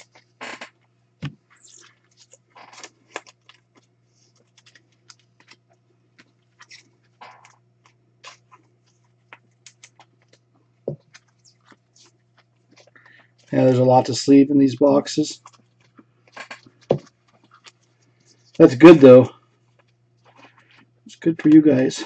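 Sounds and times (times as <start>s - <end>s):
steady low hum: 0.0s - 22.0s
cards and foil wrappers crinkling: 1.6s - 14.3s.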